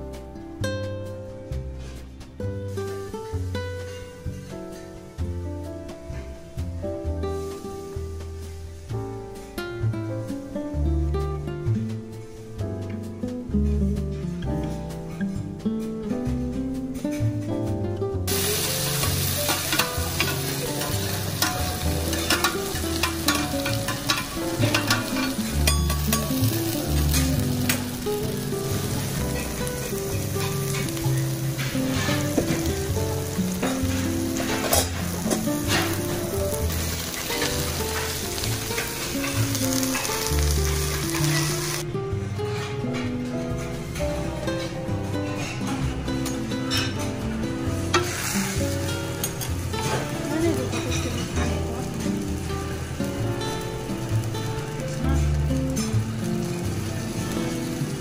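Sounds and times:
faint background music: 0.0s - 58.0s
metal spatula scraping a griddle: 18.3s - 41.8s, 47.9s - 50.1s
noodles sizzling on a griddle: 18.3s - 41.8s, 46.2s - 58.0s.

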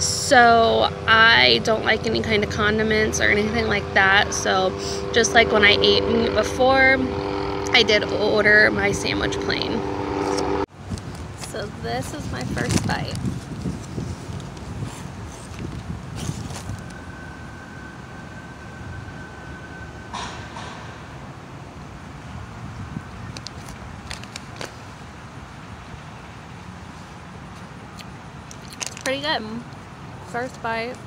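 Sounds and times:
thin steady tone: 0.0s - 10.7s
low outdoor rumble: 0.0s - 31.0s.

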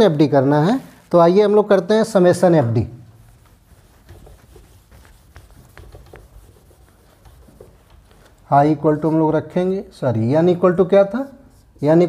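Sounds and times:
marker pen writing on whiteboard: 3.2s - 8.5s.

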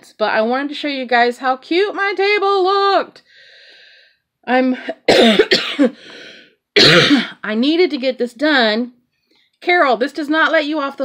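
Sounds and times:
woman coughing: 4.8s - 6.0s, 6.8s - 7.4s.

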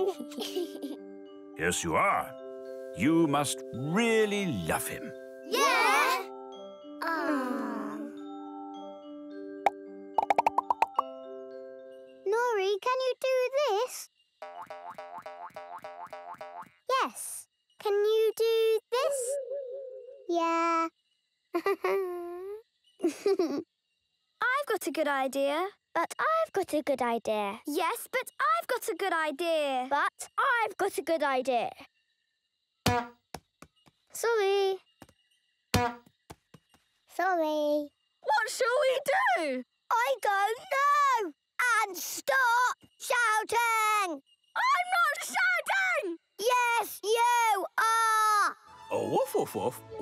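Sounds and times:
cartoon ball bouncing: 9.6s - 11.1s, 32.9s - 33.8s, 35.8s - 36.5s
wavering cartoon vocal sounds: 19.0s - 20.4s.

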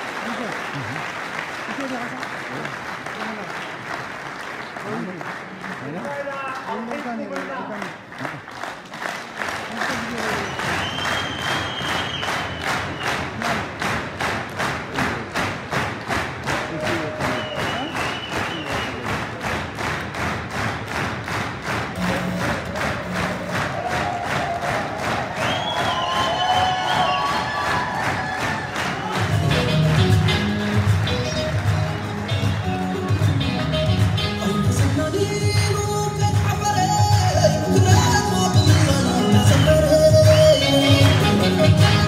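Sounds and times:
music with steady beat: 29.2s - 42.0s.

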